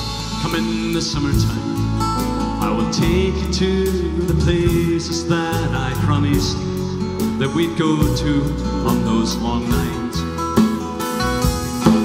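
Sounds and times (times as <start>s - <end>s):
acoustic guitar strumming: 0.0s - 12.0s
bass guitar: 0.0s - 12.0s
keyboard: 0.0s - 12.0s.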